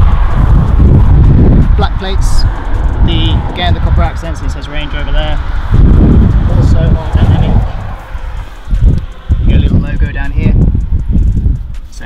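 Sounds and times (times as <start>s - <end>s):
wind rumbling on microphone: 0.0s - 12.0s
man speaking: 6.4s - 7.7s.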